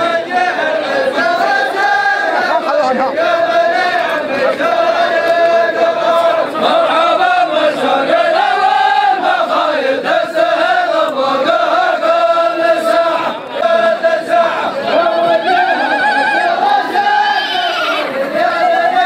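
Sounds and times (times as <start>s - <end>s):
men chanting in unison: 0.0s - 19.0s.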